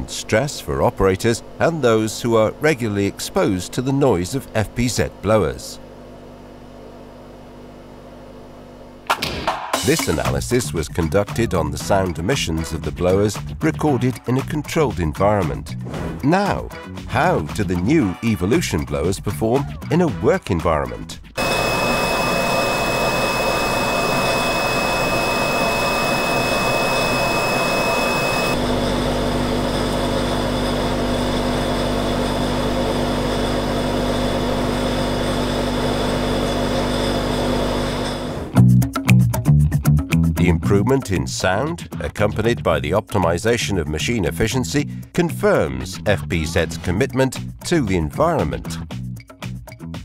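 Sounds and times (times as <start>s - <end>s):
blower high whistle: 21.4s - 28.6s
blower humming and hissing: 21.4s - 38.6s.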